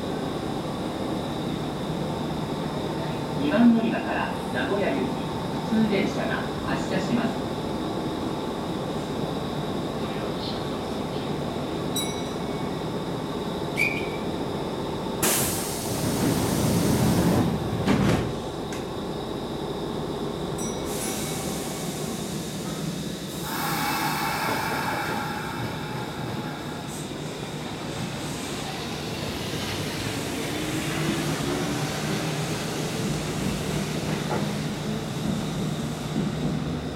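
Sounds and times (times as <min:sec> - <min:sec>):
train motors humming: 0:12.8 - 0:36.9
train doors hissing: 0:15.2 - 0:18.9, 0:20.8 - 0:36.8.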